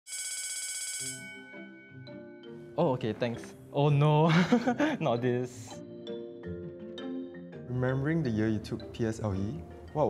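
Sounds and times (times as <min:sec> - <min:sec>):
electric bell ringing: 0:00.1 - 0:02.4
soft music with mallet tones: 0:01.0 - 0:10.0.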